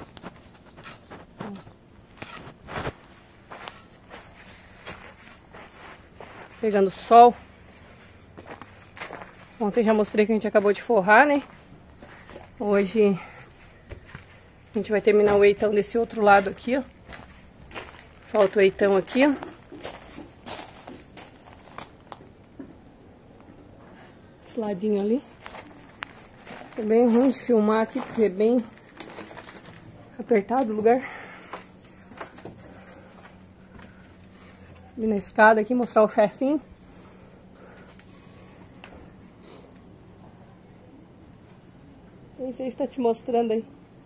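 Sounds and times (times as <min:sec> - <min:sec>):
soft footsteps: 0:00.0 - 0:30.8.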